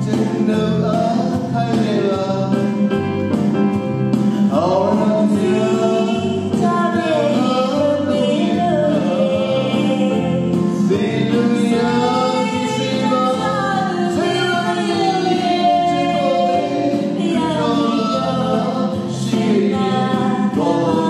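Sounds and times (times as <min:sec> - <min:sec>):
man and woman singing duet: 0:00.0 - 0:02.8, 0:04.4 - 0:21.0
sustained backing music: 0:00.0 - 0:21.0.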